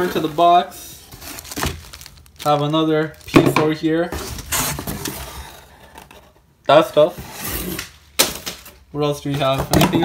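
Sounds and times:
cardboard scraping and rustling: 0.0s - 6.4s.

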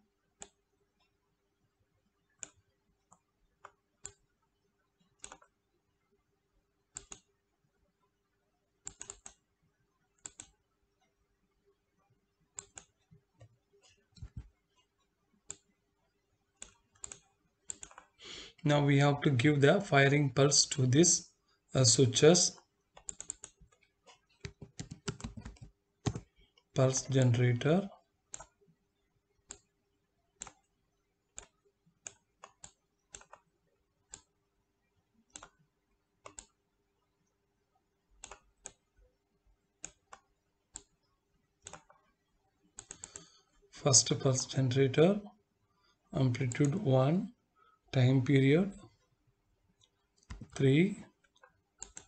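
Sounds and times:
computer mouse clicks: 0.4s - 1.1s, 2.4s - 4.3s, 5.0s - 5.6s, 6.9s - 7.3s, 8.8s - 9.5s, 10.2s - 10.6s, 12.5s - 15.8s, 16.6s - 18.2s, 22.9s - 26.7s, 28.3s - 28.6s, 29.4s - 29.7s, 30.4s - 30.7s, 31.3s - 33.5s, 34.1s - 34.4s, 35.2s - 36.6s, 38.2s - 38.9s, 39.8s - 43.6s, 49.8s - 50.6s, 51.2s - 52.0s
mouse and keyboard clicks: 5.2s - 5.5s, 8.8s - 9.4s, 10.2s - 10.6s, 16.6s - 18.1s, 23.0s - 26.3s, 31.4s - 33.5s, 39.8s - 42.1s, 42.8s - 43.3s, 49.8s - 50.6s.

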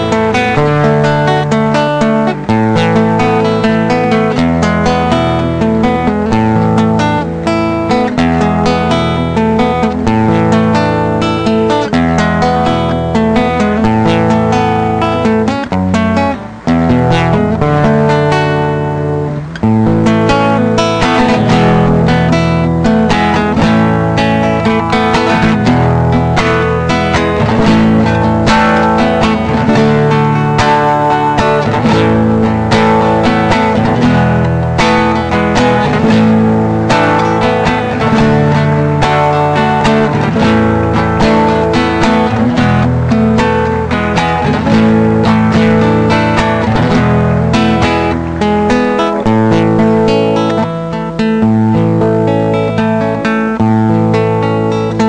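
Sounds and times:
strummed acoustic guitar music: 0.0s - 55.0s.

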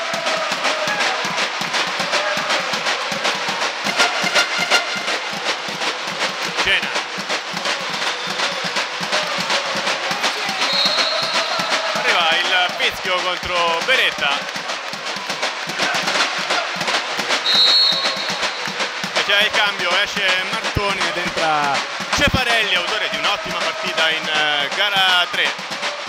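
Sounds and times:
drumming: 0.0s - 26.0s
music: 0.0s - 26.0s
voices of players and spectators: 0.0s - 26.0s.

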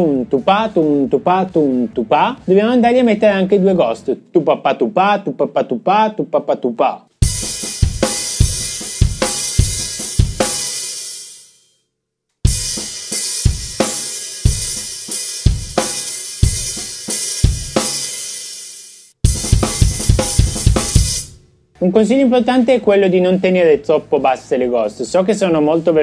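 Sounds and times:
drum kit groove: 7.2s - 11.5s, 12.4s - 22.1s.

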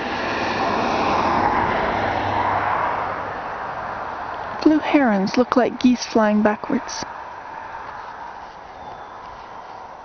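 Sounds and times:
passing engine hum: 0.0s - 10.0s.

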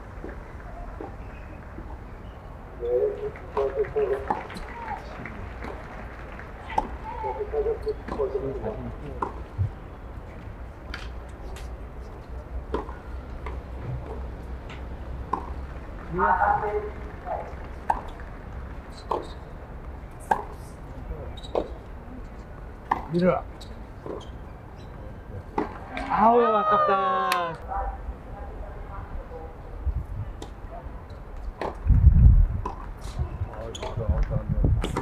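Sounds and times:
tennis ball hit by rackets: 12.7s - 14.2s, 15.3s - 15.7s, 31.6s - 31.8s
tennis ball being hit: 15.2s - 15.7s.

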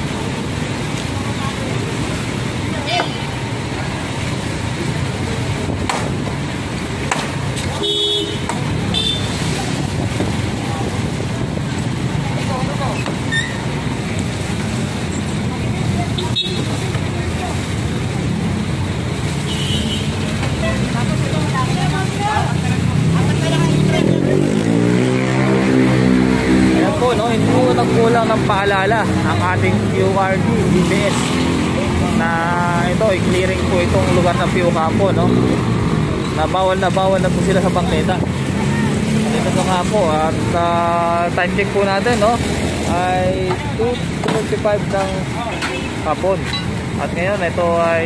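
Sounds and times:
traffic: 0.0s - 48.0s
people talking: 1.0s - 6.2s, 10.4s - 13.3s, 15.1s - 18.7s, 20.4s - 35.6s, 36.3s - 48.0s
car horn toots: 7.8s - 9.3s, 19.5s - 20.2s.

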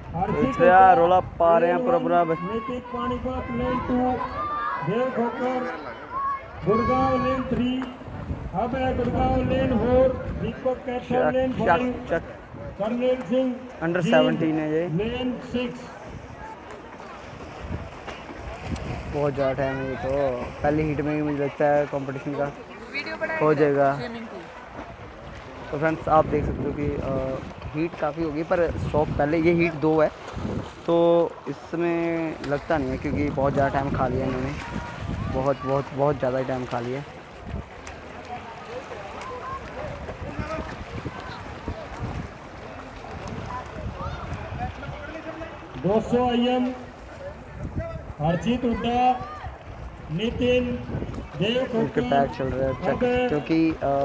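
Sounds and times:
wind on microphone: 0.0s - 1.8s, 6.2s - 12.9s, 14.2s - 22.4s, 24.1s - 30.9s, 32.3s - 38.2s, 39.2s - 54.0s
swimmers splashing in pool: 1.6s - 54.0s
swimmer splashing in pool: 29.2s - 50.2s.

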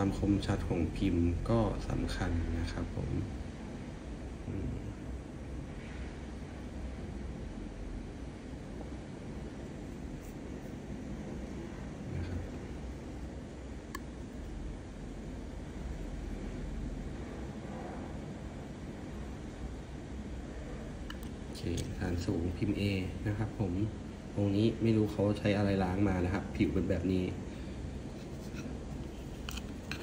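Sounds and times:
low rumble and hiss: 0.0s - 30.0s.

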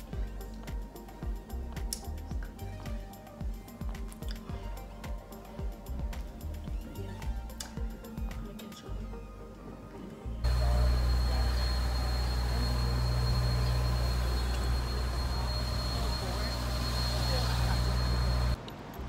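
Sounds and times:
faint high whine: 10.4s - 18.6s
low rumble of traffic: 10.4s - 19.0s.

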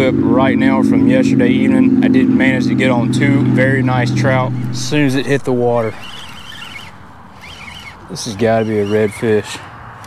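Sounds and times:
fishing reel drag whining: 4.2s - 9.4s.

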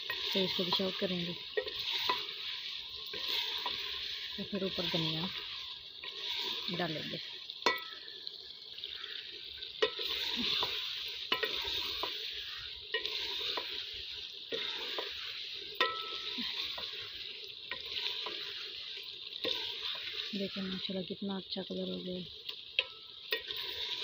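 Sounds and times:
spatula scraping a pot: 0.0s - 7.1s, 9.8s - 20.3s, 22.8s - 24.0s
curry sizzling: 0.0s - 24.0s.

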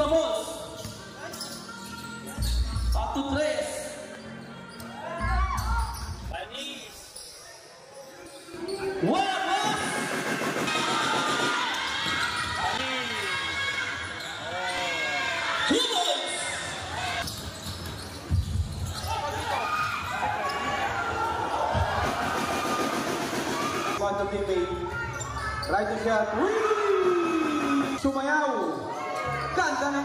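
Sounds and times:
sneakers squeaking: 0.0s - 9.1s, 11.7s - 21.9s, 24.7s - 26.1s
players and spectators shouting: 4.2s - 6.1s, 8.6s - 17.2s, 19.0s - 24.0s, 24.6s - 30.0s.

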